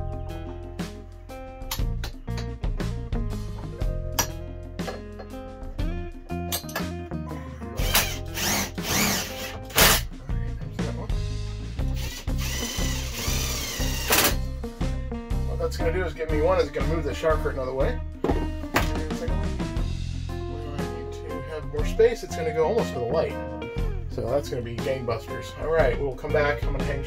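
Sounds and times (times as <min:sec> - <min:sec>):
acoustic guitar music: 0:00.0 - 0:10.5
cordless drill whirring: 0:07.8 - 0:10.0, 0:11.9 - 0:14.4.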